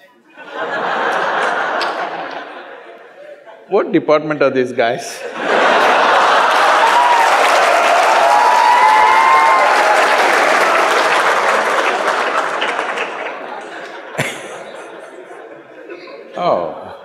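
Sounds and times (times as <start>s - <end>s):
audience applauding and laughing: 0.3s - 3.7s, 5.2s - 16.2s.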